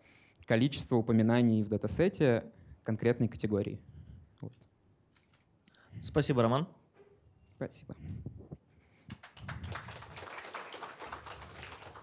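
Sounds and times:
audience applauding: 9.1s - 12.0s.

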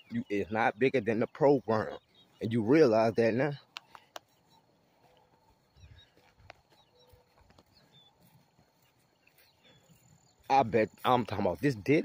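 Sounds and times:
faint chirps: 0.0s - 12.0s.

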